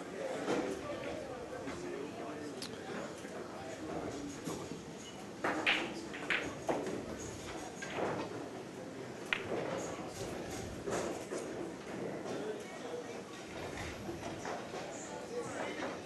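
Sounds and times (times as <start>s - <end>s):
low murmur of voices: 0.0s - 16.0s
pool balls clicking: 5.4s - 8.4s, 9.2s - 12.0s.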